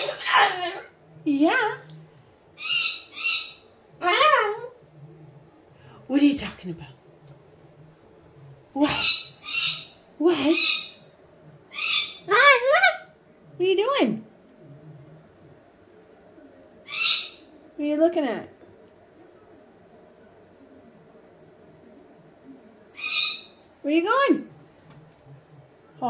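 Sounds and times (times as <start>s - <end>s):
cockatoo chattering: 0.0s - 1.0s, 8.8s - 11.0s.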